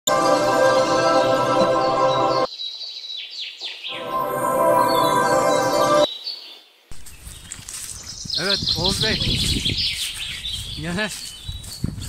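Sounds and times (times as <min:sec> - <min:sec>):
intro music: 0:00.1 - 0:02.5, 0:03.9 - 0:06.1
high falling bird chirps: 0:01.8 - 0:12.0.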